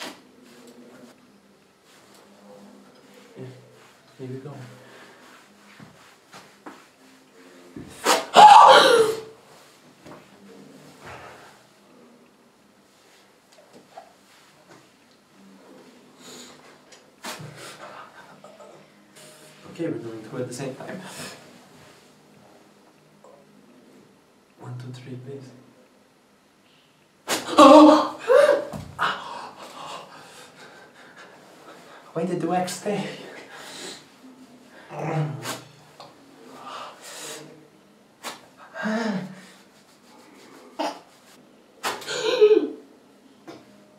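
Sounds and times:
man crying out in pain: 8.4 - 9.3, 27.5 - 29.5.

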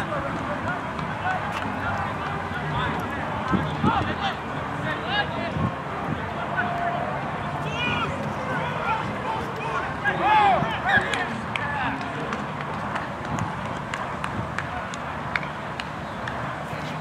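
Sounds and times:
outdoor murmur: 0.0 - 17.0
people shouting: 6.3 - 12.1.

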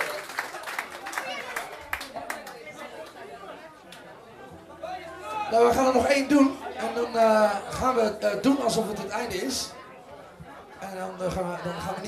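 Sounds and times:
murmur of many voices: 0.0 - 12.0.

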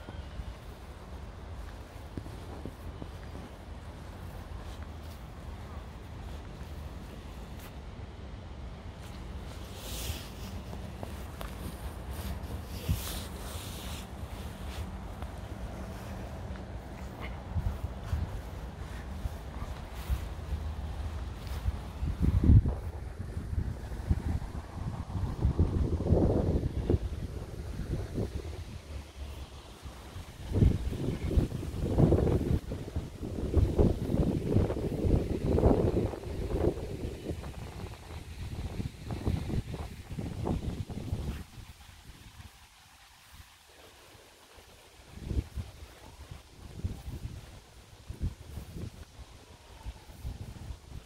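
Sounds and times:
wind buffeting microphone: 0.0 - 43.5, 45.0 - 51.0.

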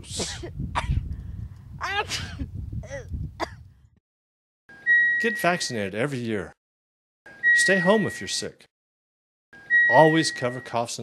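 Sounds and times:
wind rumbling on microphone: 0.0 - 4.0
woman's vocal outbursts: 1.8 - 3.1
high electronic tone: 4.8 - 5.8, 7.3 - 8.4, 9.6 - 11.0.

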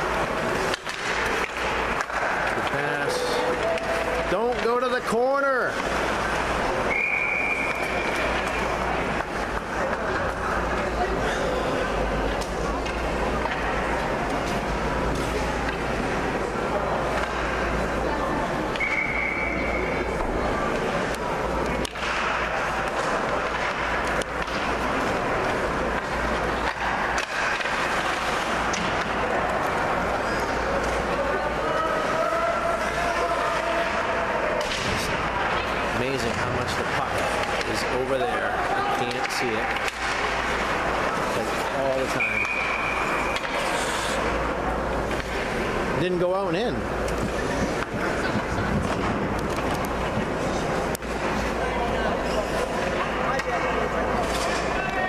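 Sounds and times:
spectators talking: 0.0 - 55.0
stick and puck clicks: 0.2 - 2.8, 20.2 - 31.1, 39.0 - 43.8, 47.0 - 51.5
referee's whistle: 6.9 - 8.2, 18.8 - 20.0, 42.2 - 43.2.

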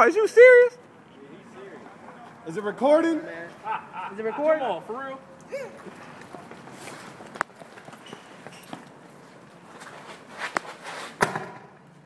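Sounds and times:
running footsteps on pavement: 5.8 - 10.6.

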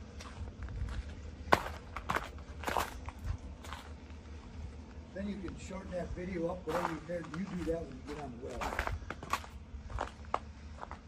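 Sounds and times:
footsteps crunching on gravel: 0.0 - 11.0
low steady rumble: 0.0 - 11.0.

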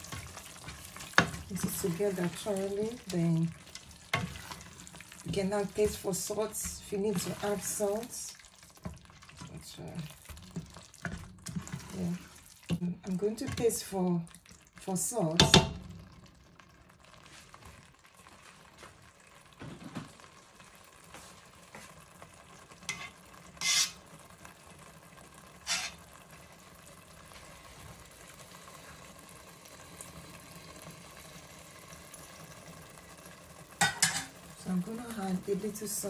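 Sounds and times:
utensil stirring thick stew: 0.0 - 19.5, 20.2 - 33.7
stew simmering: 0.0 - 36.0.

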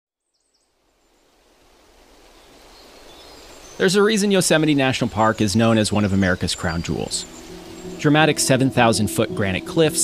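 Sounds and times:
person speaking: 3.8 - 10.0.

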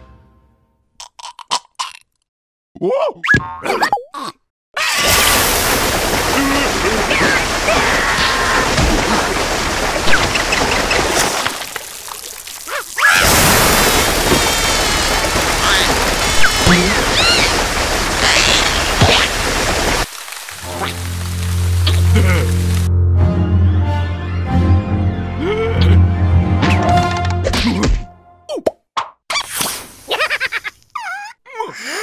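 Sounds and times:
water jets spraying: 5.0 - 22.9.

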